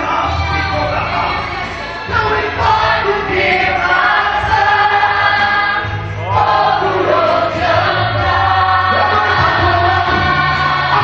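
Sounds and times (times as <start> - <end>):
voices singing along: 0.0 - 11.0.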